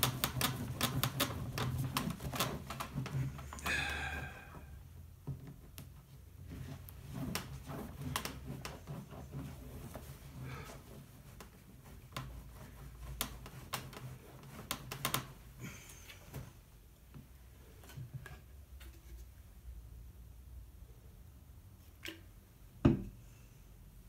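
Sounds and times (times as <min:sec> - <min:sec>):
cloth scrubbing glass: 0:06.3 - 0:15.6.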